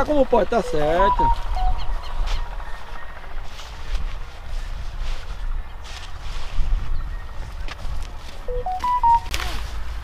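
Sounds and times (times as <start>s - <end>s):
wind on microphone: 1.4s - 8.4s.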